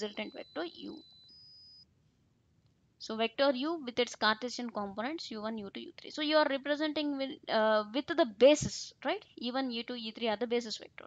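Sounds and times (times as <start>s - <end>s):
faint high-pitched tone: 0.0s - 1.8s.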